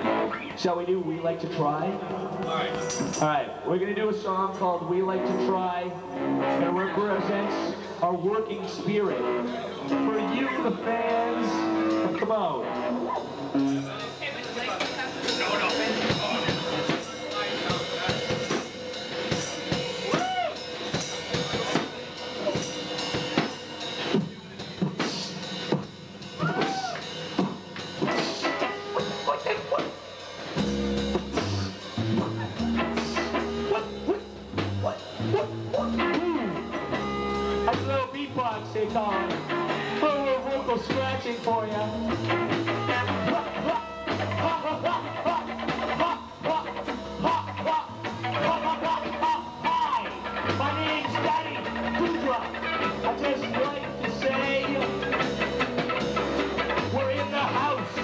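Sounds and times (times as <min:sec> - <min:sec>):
rock band playing: 0:00.0 - 0:58.0
drums and snare hits: 0:14.8 - 0:30.0
bass line: 0:30.5 - 0:58.0.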